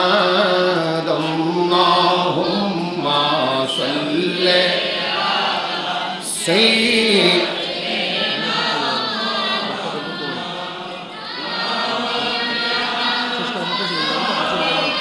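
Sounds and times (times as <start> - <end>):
men and boys chanting in unison: 0.0 - 15.0.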